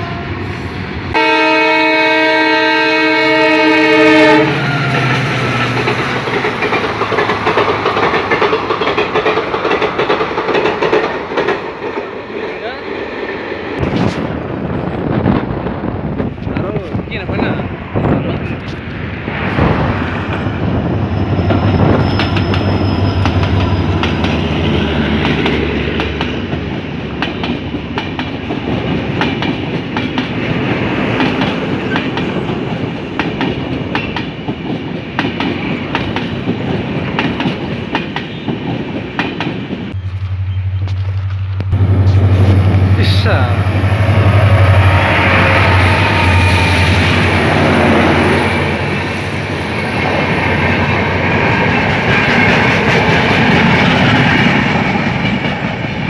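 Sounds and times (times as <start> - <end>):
passenger train rumbling past: 0.0 - 56.0
wheels clicking over rail joints: 5.0 - 12.5.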